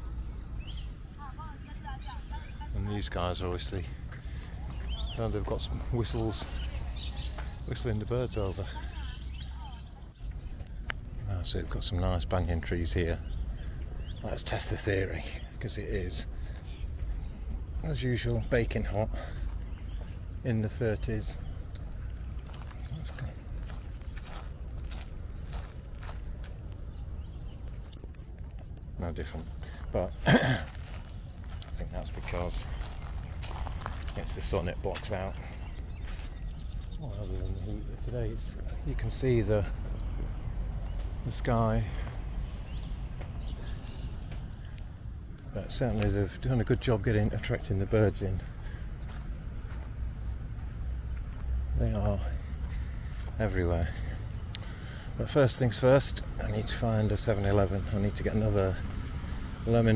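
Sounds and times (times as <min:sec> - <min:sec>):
steady low rumble: 0:07.5 - 0:59.9
footsteps crunching on dry leaves: 0:21.7 - 0:26.8, 0:30.2 - 0:36.6, 0:48.5 - 0:50.0, 0:52.6 - 0:53.4.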